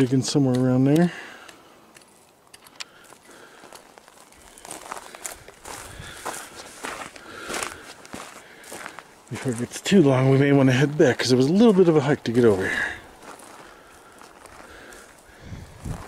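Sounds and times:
footsteps on gravelly dirt: 0.0 - 16.0.

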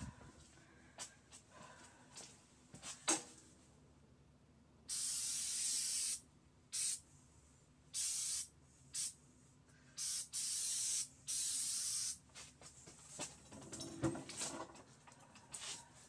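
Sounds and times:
spray paint can hissing: 4.9 - 7.0, 7.9 - 9.2, 10.0 - 12.2.

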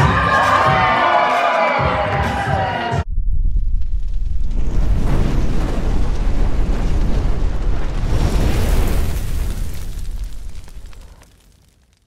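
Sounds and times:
crowd cheering and shouting: 0.0 - 3.0
deep steady rumble: 3.0 - 8.1.

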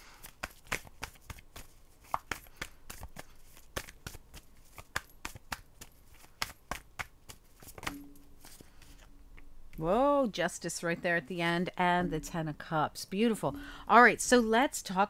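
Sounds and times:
cards being shuffled: 0.2 - 9.1.

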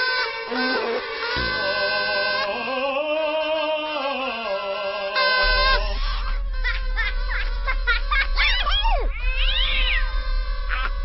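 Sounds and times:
music drone: 0.0 - 11.0.

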